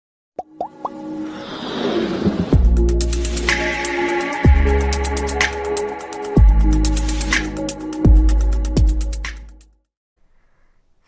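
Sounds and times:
quick rising pops: 0.6 - 3.6
whoosh: 1.1 - 3.7.

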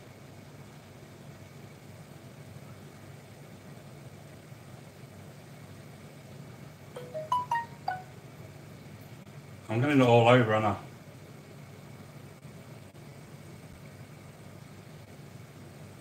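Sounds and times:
quick run of chiming notes: 7.0 - 8.1.

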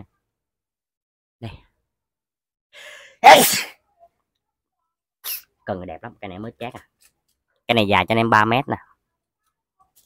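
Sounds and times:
breathy intake: 2.8 - 3.7
man sneezing: 3.1 - 3.8.

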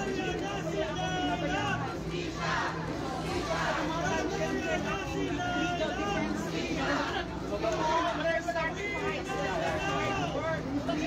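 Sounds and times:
babble of overlapping voices: 0.0 - 11.0.

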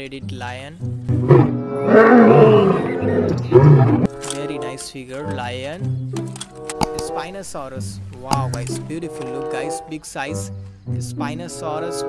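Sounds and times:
lion roaring: 1.1 - 4.1.

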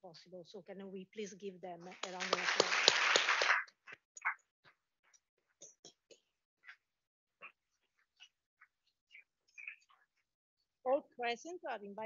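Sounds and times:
faint scattered applause: 1.9 - 4.4.

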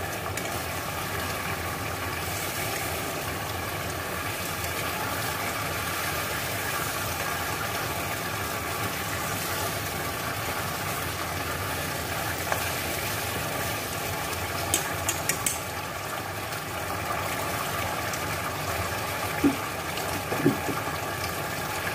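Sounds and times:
chicken sizzling in a pan: 0.0 - 21.9.

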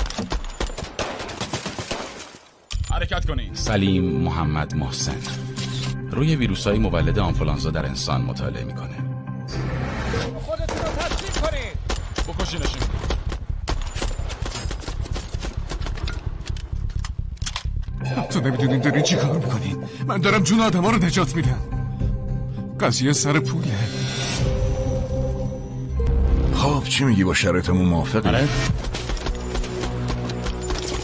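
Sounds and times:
rapid gunshots: 0.0 - 2.3, 10.7 - 16.1, 28.7 - 31.0.

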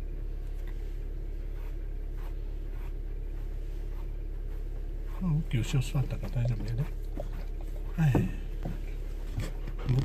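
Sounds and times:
low hum inside car: 0.0 - 10.0
hand stroking dog fur: 0.4 - 9.8.

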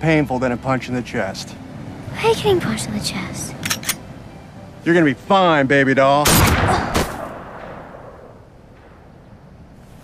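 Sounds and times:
handgun shot echo: 6.3 - 8.3.

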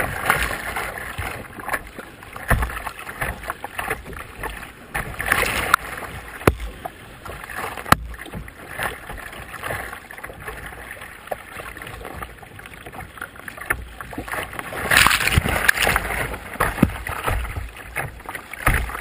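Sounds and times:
water slapping against kayak hull: 0.0 - 19.0
sharp knocks: 6.4 - 6.7.

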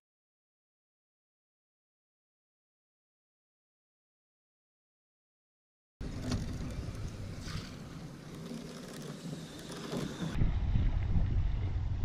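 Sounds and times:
wind buffeting microphone: 9.4 - 12.0.

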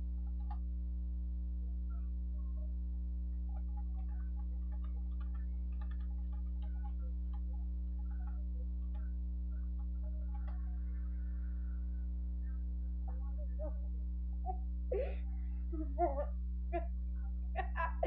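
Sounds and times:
low electrical hum: 0.0 - 18.0
computer keyboard typing: 3.6 - 9.1.

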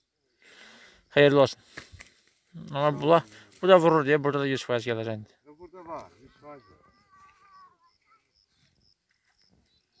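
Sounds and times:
faint high-pitched chirps: 5.4 - 10.0.

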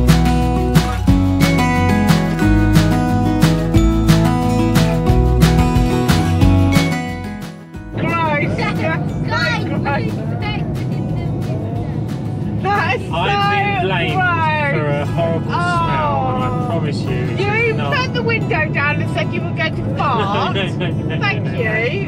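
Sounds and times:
engine and road noise: 0.0 - 22.0
people talking: 8.0 - 22.0
people laughing: 20.0 - 22.0.

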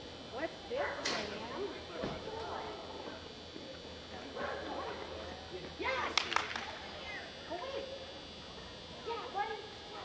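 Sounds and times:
steady hall hum: 0.0 - 10.0.

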